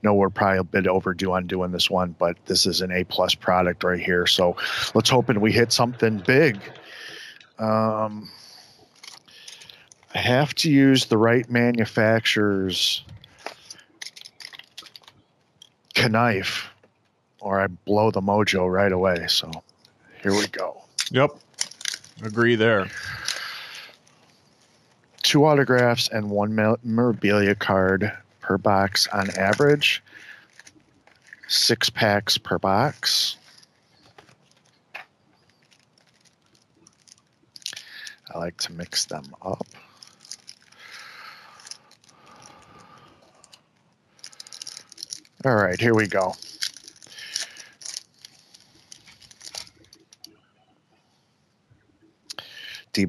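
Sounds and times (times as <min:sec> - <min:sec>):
wrapping rustling: 0:03.7 - 0:11.8, 0:13.0 - 0:16.0, 0:19.3 - 0:31.6, 0:32.8 - 0:50.4.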